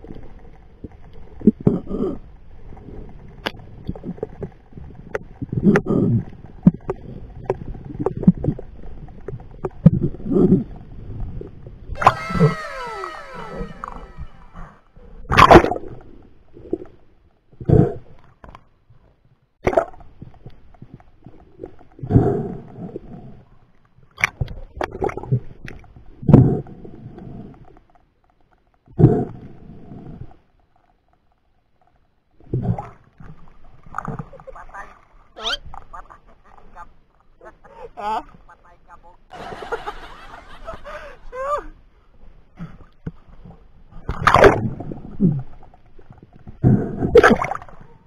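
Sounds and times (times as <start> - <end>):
muffled underwater water noise: 0.0 - 48.0
man making wordless call: 12.0 - 14.7.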